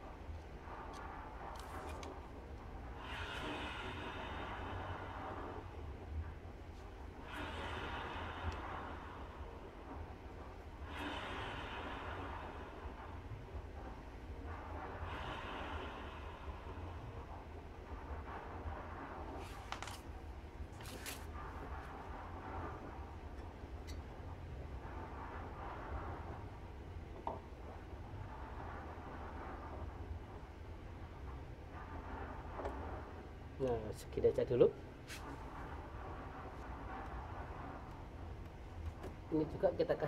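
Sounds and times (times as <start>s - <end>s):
low background hum: 0.0s - 40.0s.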